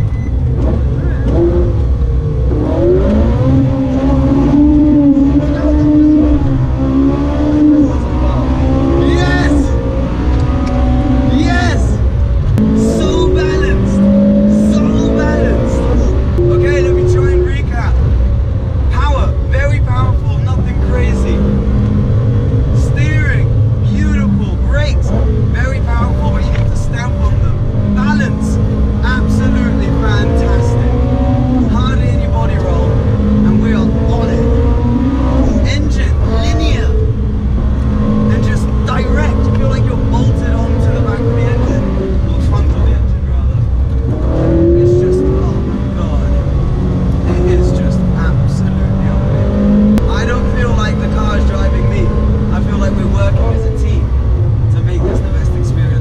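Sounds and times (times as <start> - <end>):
car engine revving: 0.0 - 56.0
voices: 3.0 - 18.0, 18.9 - 21.6, 22.7 - 37.1, 37.8 - 54.1, 54.7 - 56.0.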